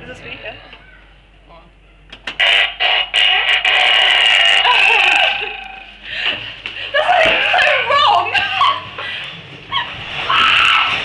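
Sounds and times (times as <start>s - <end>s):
harsh electronic sound effect: 2.4s - 6.0s.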